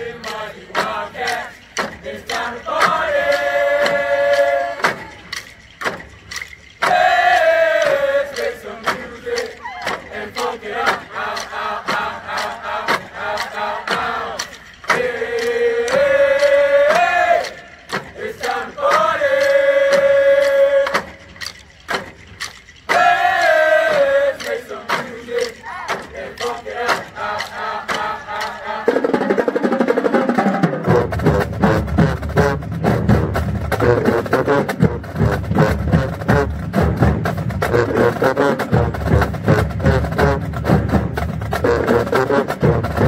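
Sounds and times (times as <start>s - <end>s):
band members chanting in unison: 0.0s - 5.0s, 6.9s - 20.9s, 22.9s - 28.9s
drums keeping steady beat: 0.0s - 43.0s.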